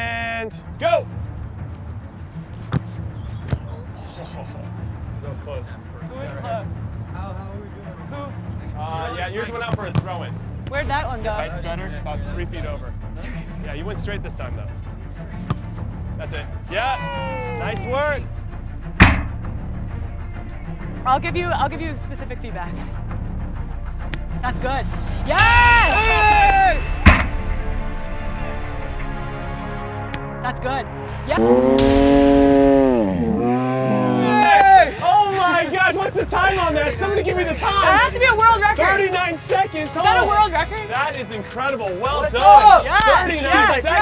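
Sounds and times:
background music: 0.0 - 44.0
ball kick thump: 2.6 - 3.7, 9.7 - 10.1, 19.0 - 19.4, 27.0 - 27.4
ball hitting metal crossbar: 19.0 - 19.3, 27.0 - 27.5.

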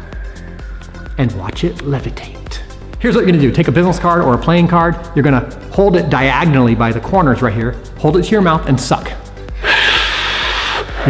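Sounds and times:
man sucking air through lips: 9.6 - 11.0.

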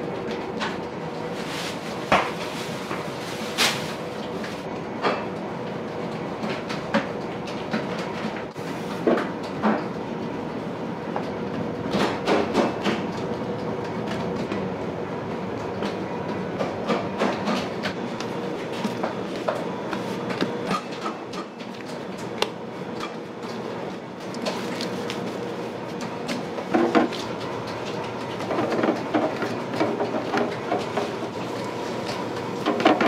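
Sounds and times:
equipment humming: 0.0 - 33.0.

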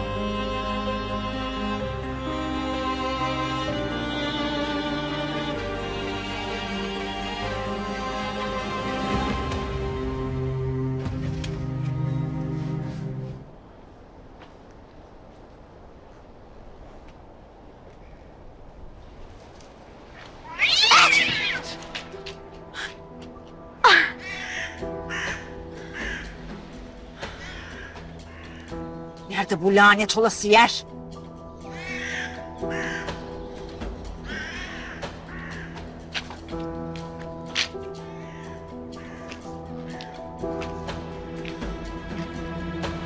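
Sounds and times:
music with sustained notes: 0.0 - 14.2, 21.0 - 43.0
cat yowling loudly: 20.4 - 21.8
crow cawing: 23.8 - 26.6, 27.2 - 29.1, 31.6 - 36.0, 38.0 - 40.1.

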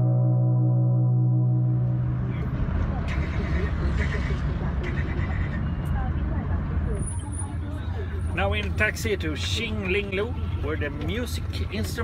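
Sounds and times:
car engine and road noise: 0.0 - 12.0
faint voices: 2.3 - 12.0.

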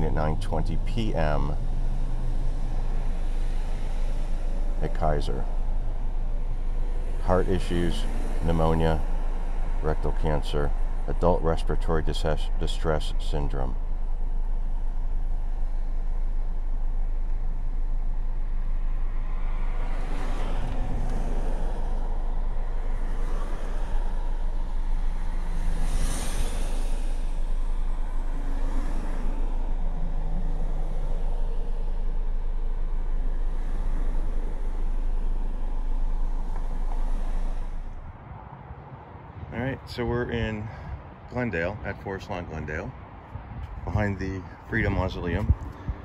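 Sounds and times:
vehicles passing: 0.0 - 46.0
wind buffeting microphone: 43.3 - 44.2.

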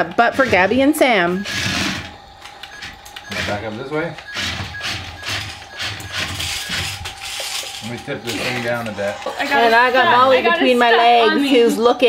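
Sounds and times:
toy electric motors whirring: 0.0 - 11.7.

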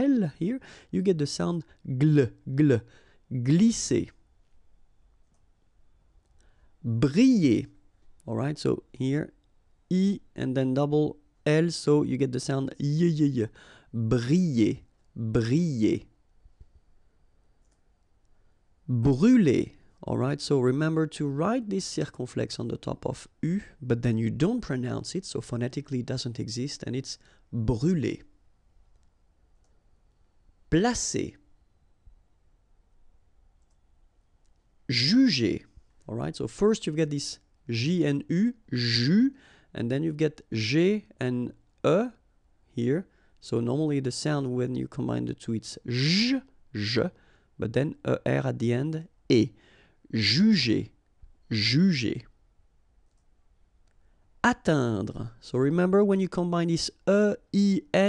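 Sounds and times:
man speaking: 0.0 - 4.2, 6.8 - 16.1, 18.9 - 28.3, 30.7 - 31.4, 34.9 - 52.3, 54.4 - 58.0
faint clicks: 17.6 - 18.4, 33.6 - 34.7, 53.0 - 54.0.

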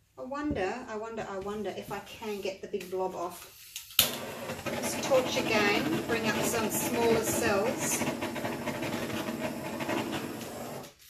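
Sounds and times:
torch flame hissing: 4.0 - 11.0.

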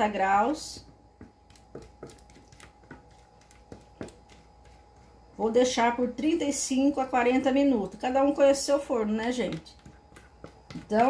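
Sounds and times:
spatula tapping plastic blender jar: 0.7 - 4.8, 9.0 - 11.0.

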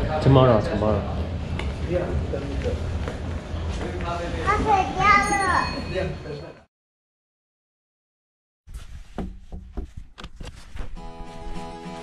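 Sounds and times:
little girl speaking: 4.5 - 5.8.

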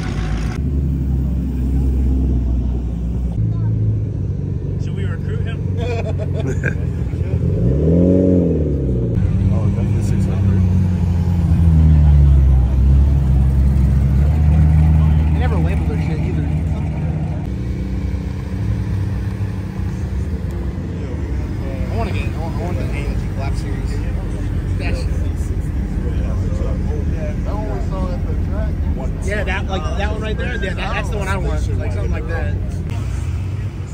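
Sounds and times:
car engine at low revs: 0.0 - 33.9
sports car passing slowly: 0.0 - 33.9
people talking in background: 9.2 - 33.9.

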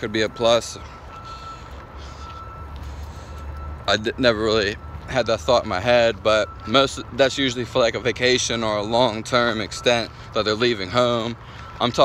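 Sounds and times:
heavy vehicle engine rumbling: 0.0 - 12.0.

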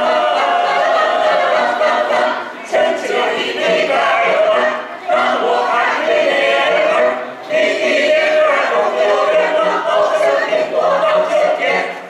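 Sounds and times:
mixed choir singing: 0.0 - 12.0.

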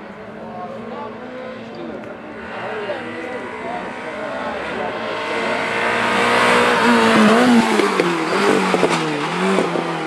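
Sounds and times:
car engine revving: 0.8 - 10.0.

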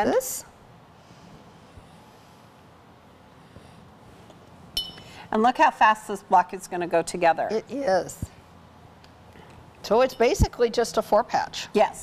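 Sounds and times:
bright clink: 4.8 - 5.2.

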